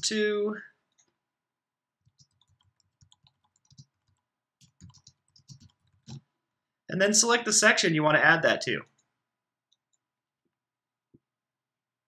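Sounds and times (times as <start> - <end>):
computer keyboard typing: 2.0 - 6.3.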